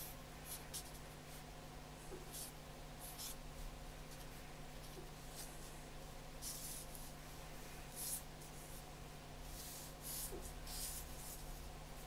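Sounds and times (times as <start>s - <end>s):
marker pen scratching on paper: 0.0s - 1.4s, 2.1s - 3.4s, 6.4s - 7.1s, 7.9s - 8.8s, 9.4s - 12.0s.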